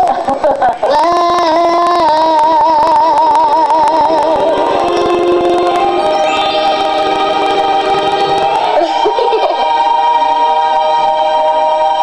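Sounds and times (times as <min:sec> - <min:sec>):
girl singing with vibrato: 0:00.9 - 0:09.6
backing track with sustained chords: 0:03.2 - 0:12.0.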